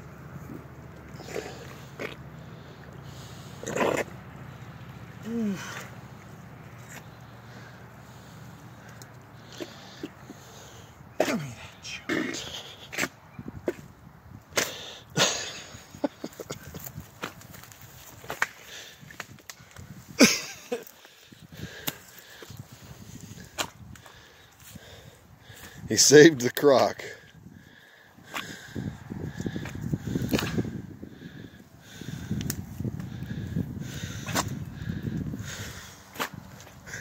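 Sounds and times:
man straining and grunting: 0.5s - 2.2s, 5.2s - 6.0s, 11.1s - 13.1s.

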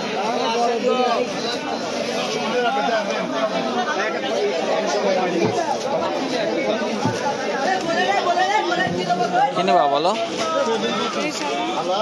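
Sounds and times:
market chatter of many voices: 0.0s - 12.0s.

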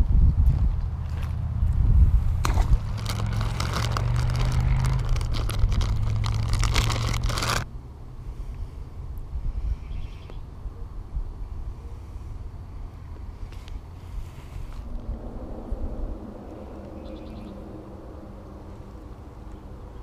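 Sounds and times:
low rumble: 0.0s - 9.7s, 12.6s - 20.0s
plastic bag crinkling: 2.4s - 7.7s.

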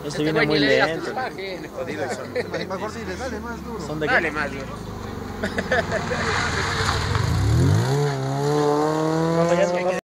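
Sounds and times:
rally car engine accelerating: 3.3s - 10.0s.

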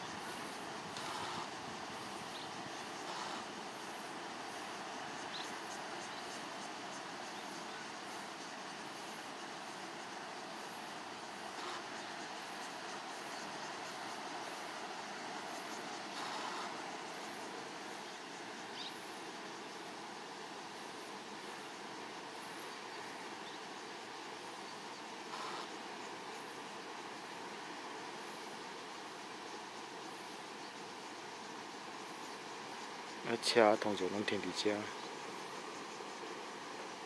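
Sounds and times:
outdoor background noise: 0.0s - 37.0s.

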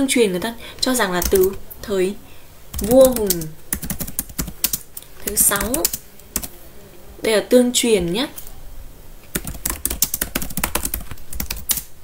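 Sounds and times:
computer keyboard typing: 1.1s - 1.6s, 2.7s - 6.5s, 9.3s - 11.9s.

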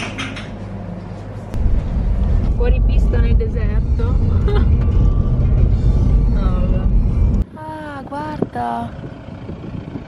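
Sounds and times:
music: 2.4s - 7.4s
vehicle rumbling over dirt track: 8.0s - 10.0s.

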